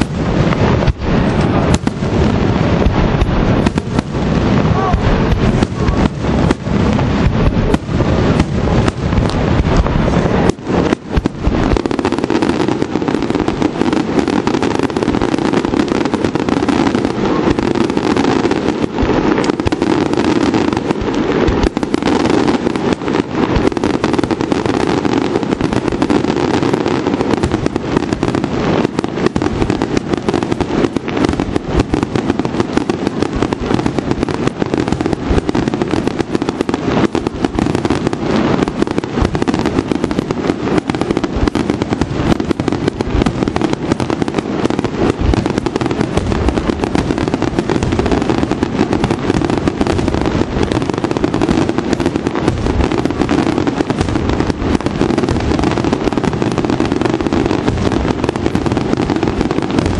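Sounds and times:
firework shells bursting: 0:00.0 - 0:59.9.

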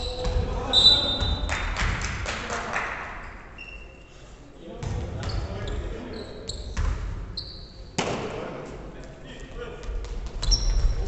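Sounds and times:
sneaker squeaks: 0:00.0 - 0:01.5, 0:03.2 - 0:04.2, 0:05.2 - 0:08.0, 0:10.3 - 0:11.0.

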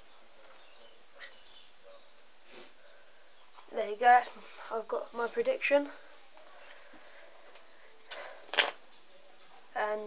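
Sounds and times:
playing cards rustling: 0:06.5 - 0:09.5.

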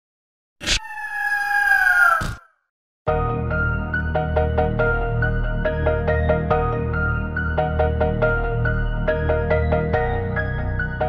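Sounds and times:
long animal-like call sliding down: 0:00.6 - 0:02.5.

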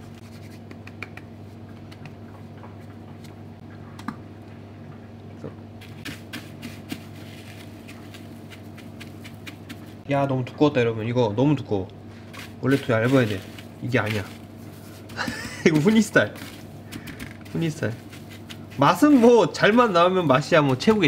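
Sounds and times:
steady low hum: 0:00.0 - 0:21.0
breadcrumbs scratching and rustling: 0:05.8 - 0:10.0, 0:12.1 - 0:21.0.

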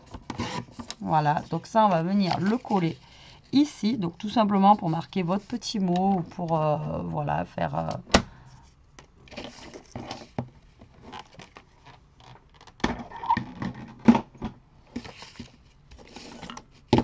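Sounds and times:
paper and card rustling: 0:00.0 - 0:08.0, 0:09.3 - 0:10.4.

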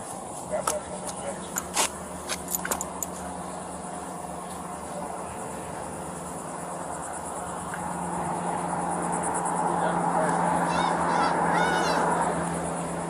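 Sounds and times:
high-pitched steady buzz: 0:00.0 - 0:13.0.

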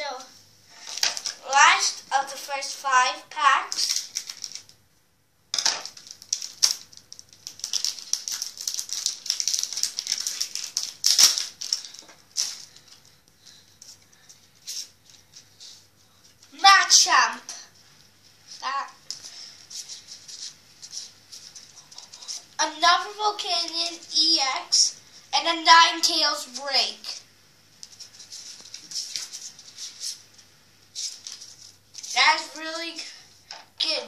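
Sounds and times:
child's voice: 0:00.0 - 0:00.3, 0:01.4 - 0:03.9, 0:16.5 - 0:17.7, 0:18.6 - 0:19.0, 0:22.6 - 0:27.2, 0:32.1 - 0:33.2, 0:33.8 - 0:34.0
foil wrapper crinkling: 0:00.7 - 0:01.5, 0:03.7 - 0:04.8, 0:05.6 - 0:13.6, 0:27.8 - 0:30.2, 0:30.9 - 0:32.6
scissors cutting foil: 0:06.0 - 0:12.6.

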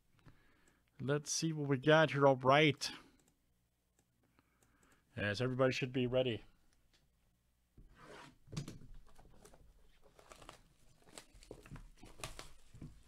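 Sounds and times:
shrink wrap crinkling and tearing: 0:09.4 - 0:12.9.

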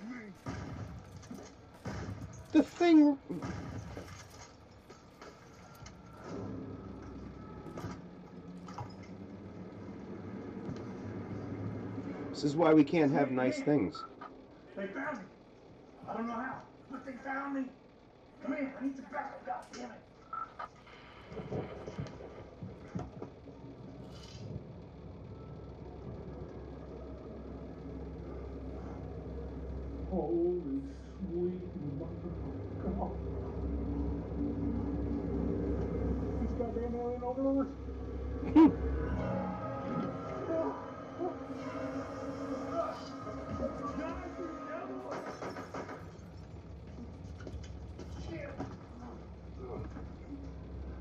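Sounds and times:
low steady drone: 0:00.0 - 0:13.7, 0:20.9 - 0:51.0
low rumble: 0:21.3 - 0:51.0.

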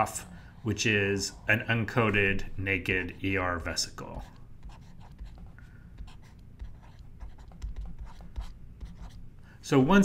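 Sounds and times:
stylus scratching on tablet: 0:00.0 - 0:09.2
low steady hum: 0:00.0 - 0:10.0.

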